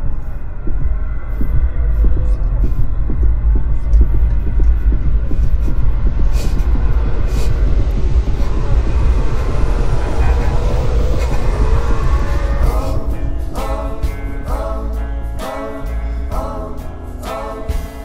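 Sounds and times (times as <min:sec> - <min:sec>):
low rumble: 0:00.0 - 0:18.0
music with singing: 0:00.0 - 0:18.0.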